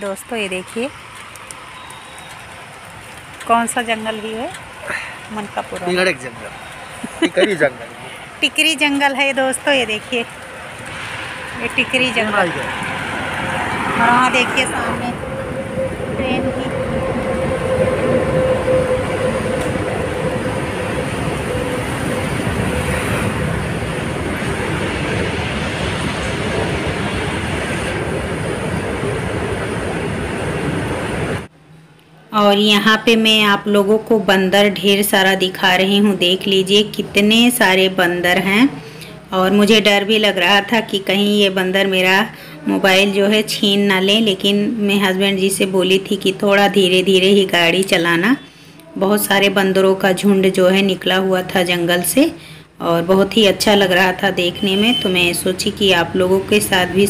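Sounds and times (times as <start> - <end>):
wind and road noise: 0.0 - 57.0
moving vehicle rushing noise: 9.6 - 31.5.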